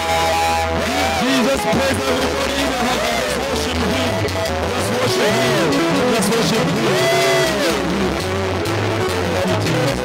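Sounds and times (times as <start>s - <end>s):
guitar: 0.0s - 10.0s
steady bass line: 0.0s - 10.0s
worship band playing: 0.0s - 10.0s.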